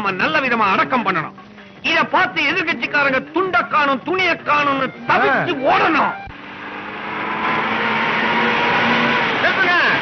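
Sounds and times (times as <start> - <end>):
car engine and road noise: 4.6 - 10.0.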